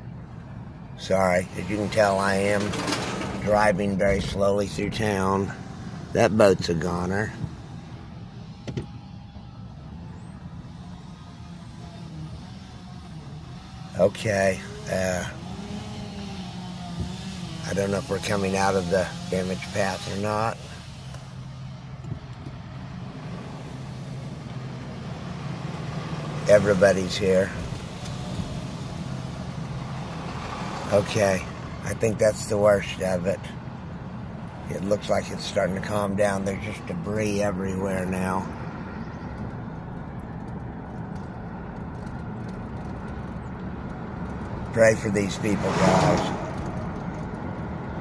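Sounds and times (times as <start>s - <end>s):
vehicle engine and road rumble: 0.0s - 48.0s.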